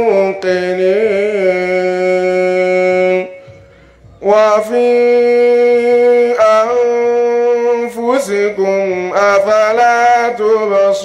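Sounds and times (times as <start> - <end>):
man reciting melodically into microphone: 0.0 - 11.0.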